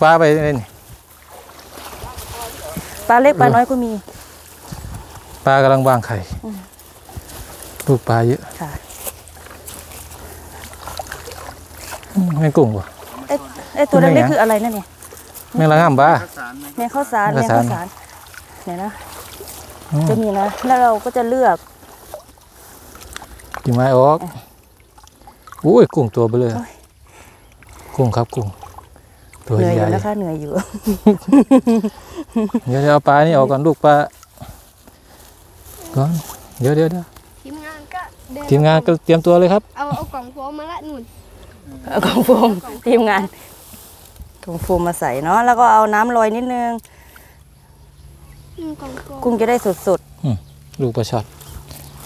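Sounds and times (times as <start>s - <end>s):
water trickling and dripping: 0.0s - 52.0s
person speaking: 2.0s - 4.0s, 12.1s - 14.9s.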